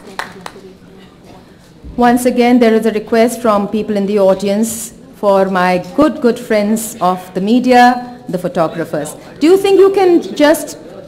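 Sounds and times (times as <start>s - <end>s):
audience applause: 0.0s - 0.6s
faint voices in a hall: 0.0s - 11.0s.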